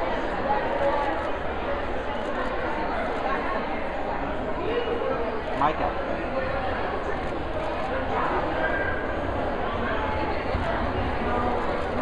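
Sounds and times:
chatter of many voices echoing: 0:00.0 - 0:12.0.

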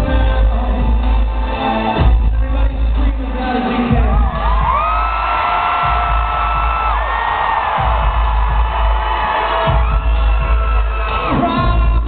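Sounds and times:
heavy boomy bass: 0:00.0 - 0:12.0.

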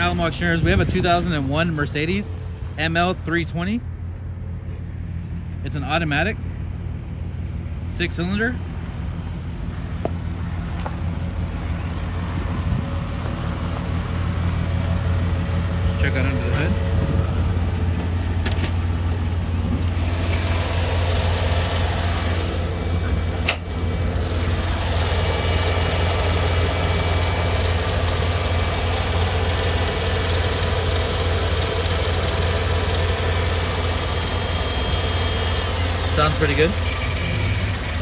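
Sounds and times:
car engine idling: 0:00.0 - 0:38.0.

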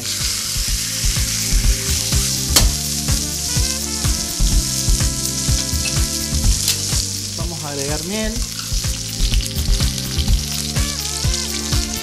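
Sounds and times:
meat sizzling in hot oil: 0:00.0 - 0:12.0
steady low tones: 0:00.0 - 0:12.0
metal tongs turning meat: 0:06.6 - 0:09.6.

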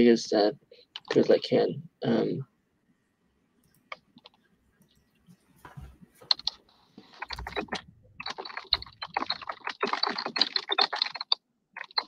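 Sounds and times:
typing on computer keyboard: 0:07.2 - 0:12.0.

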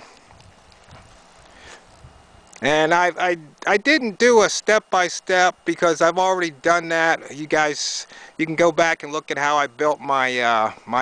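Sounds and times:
footsteps on dry ground and grass: 0:00.0 - 0:02.8
outdoor background hiss: 0:00.0 - 0:11.0.

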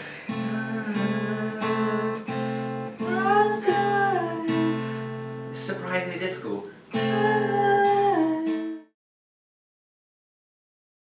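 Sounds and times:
person humming: 0:00.0 - 0:02.3, 0:03.0 - 0:05.0, 0:07.0 - 0:08.9
acoustic guitar chord ringing: 0:00.0 - 0:06.2, 0:06.9 - 0:08.9.

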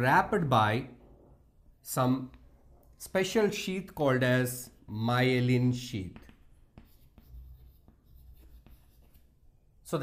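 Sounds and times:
chalk tapping and scratching: 0:05.5 - 0:09.5.

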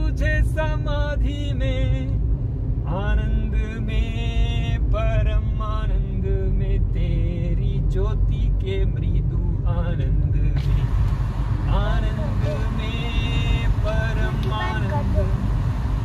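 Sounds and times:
car engine and tyres rumbling: 0:00.0 - 0:16.0
person speaking: 0:14.1 - 0:15.4.

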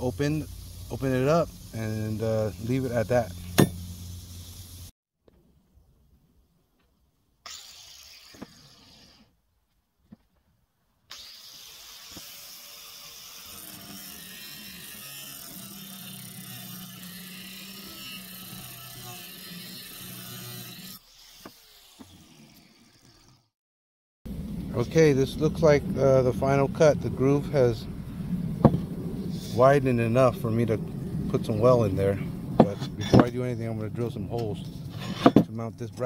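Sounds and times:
angle grinder cutting steel: 0:07.4 - 0:09.3, 0:11.1 - 0:23.5.

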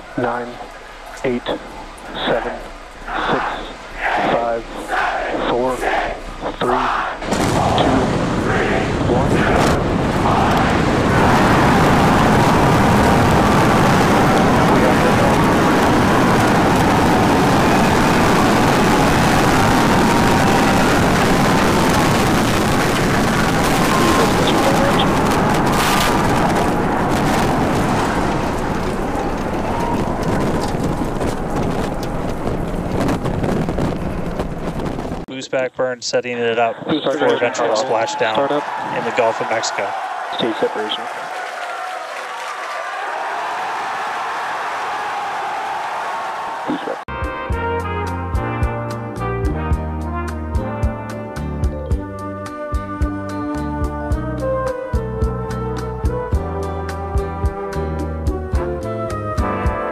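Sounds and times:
person speaking countdown: 0:00.0 - 0:07.0, 0:07.6 - 0:08.2, 0:35.3 - 0:41.0
rocket engines roaring: 0:00.0 - 0:35.3, 0:36.4 - 0:41.2.

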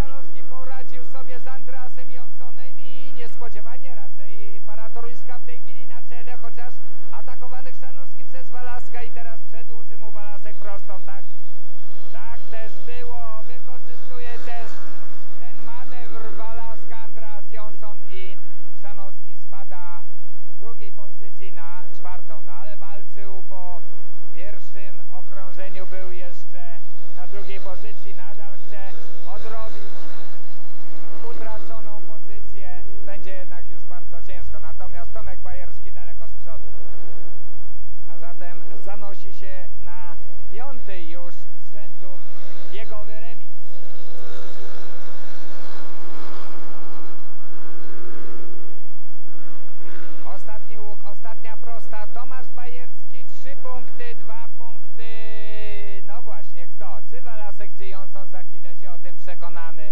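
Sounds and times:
motorcycle engines racing: 0:00.0 - 0:59.9.

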